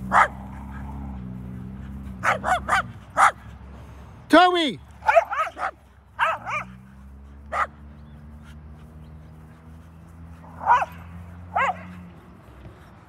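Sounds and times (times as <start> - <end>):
dogs barking: 0.0 - 3.8, 4.9 - 13.0.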